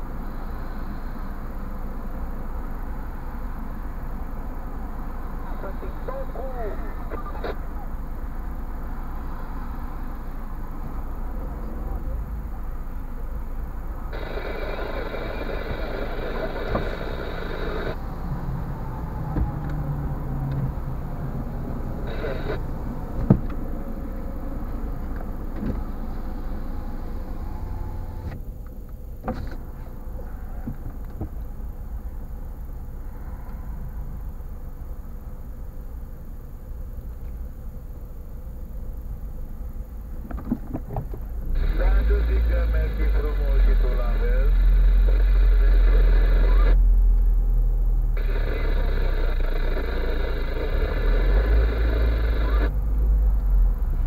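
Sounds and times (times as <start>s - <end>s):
car engine idling: 0.0s - 45.9s.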